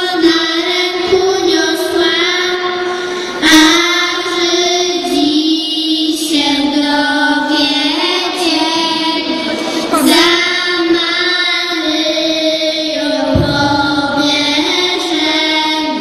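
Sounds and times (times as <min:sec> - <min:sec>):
girls singing a carol: 0:00.0 - 0:16.0.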